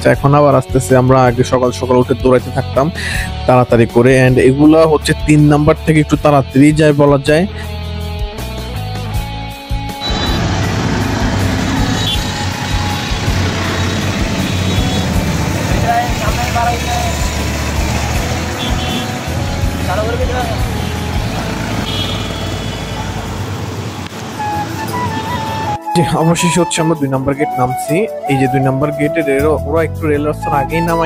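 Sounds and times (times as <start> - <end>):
busy street traffic: 8.9 - 26.5
vehicle horn honks: 10.0 - 10.5, 11.9 - 13.2, 13.9 - 15.2, 18.5 - 19.3, 21.8 - 23.2
auto-rickshaw engine running: 10.0 - 25.7.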